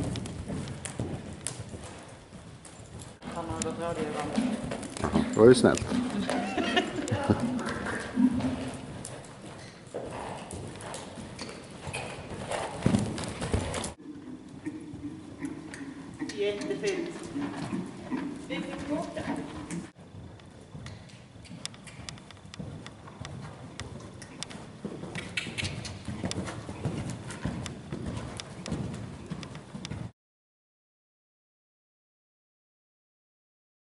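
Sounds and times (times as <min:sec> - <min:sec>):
horse hoofbeats on sand: 0:00.0 - 0:30.1
sharp clicks: 0:20.8 - 0:26.4.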